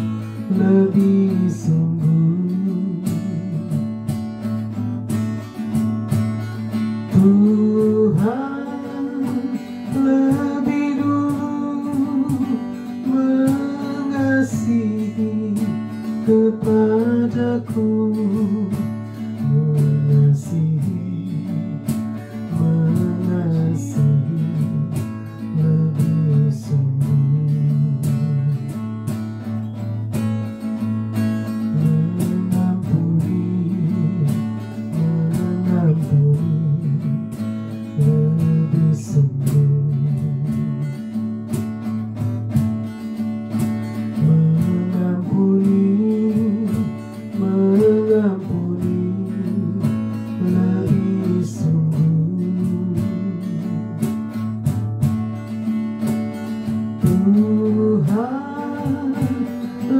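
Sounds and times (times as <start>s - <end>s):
acoustic guitar strumming: 0.0s - 59.9s
woman singing: 7.1s - 28.7s, 38.0s - 41.0s, 44.2s - 54.1s, 57.0s - 59.9s.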